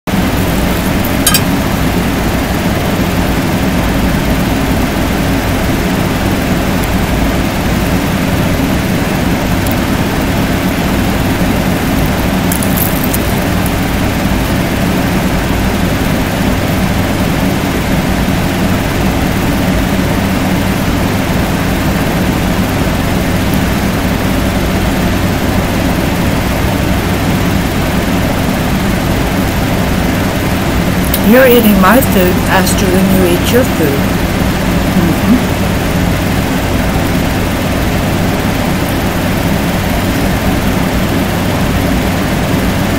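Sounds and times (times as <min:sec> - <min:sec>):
steady mechanical hum with hiss: 0:00.2 - 0:42.9.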